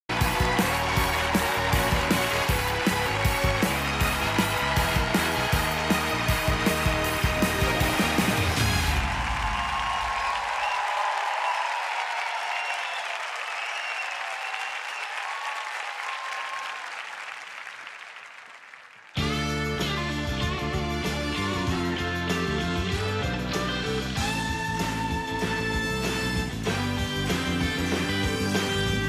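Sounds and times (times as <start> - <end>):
audience applause: 0.0 - 19.3
show music with steady beat: 0.1 - 9.0.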